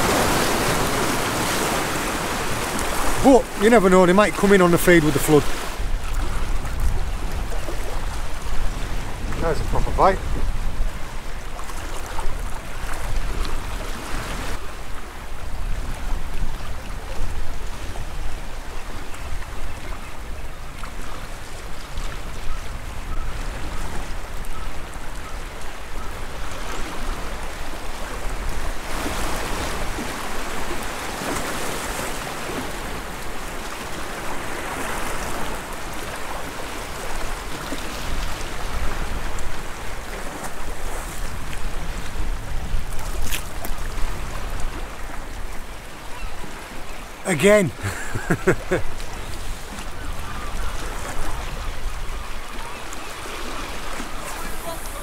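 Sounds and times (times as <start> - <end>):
sea surging around rocks: 0.0 - 55.0
wind buffeting microphone: 5.5 - 14.6, 37.0 - 45.8.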